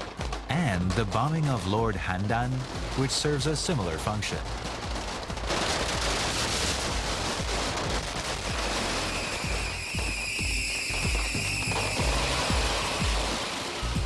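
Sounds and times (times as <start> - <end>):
firecrackers crackling: 0.0 - 14.0
music with thudding low beat: 4.4 - 14.0.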